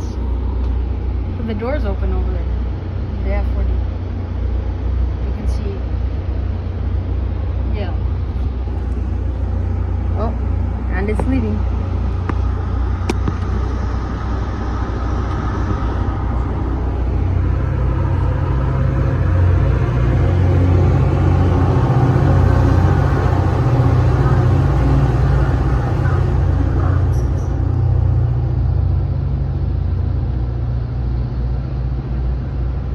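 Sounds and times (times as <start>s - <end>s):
train rumble from inside car: 0.0s - 32.9s.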